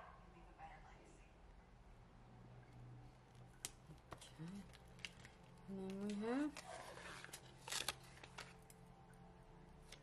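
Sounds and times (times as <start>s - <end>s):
paper sticker sheets crinkling: 3.6s - 8.8s.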